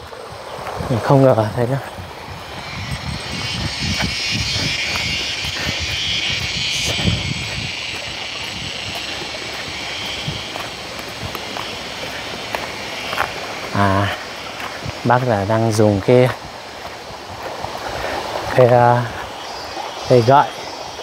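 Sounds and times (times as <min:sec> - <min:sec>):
footsteps on wet dirt path: 0:00.0 - 0:21.0
steady high hiss: 0:00.0 - 0:21.0
handling noise of microphone: 0:01.7 - 0:14.1.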